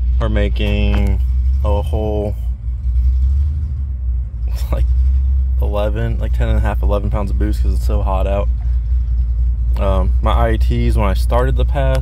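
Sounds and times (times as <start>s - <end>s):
car engine low rumble: 0.0s - 12.0s.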